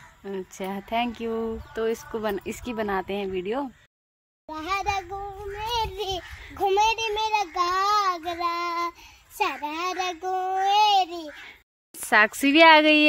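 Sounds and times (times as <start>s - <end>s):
young girl singing: 4.5s - 11.4s.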